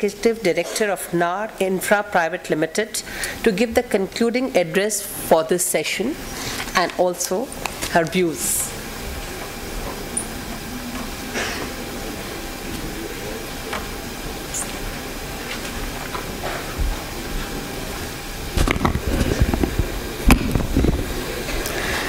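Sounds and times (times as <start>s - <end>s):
room tone hiss through speakers: 0.0s - 22.0s
microphone handling thumps: 18.5s - 21.2s.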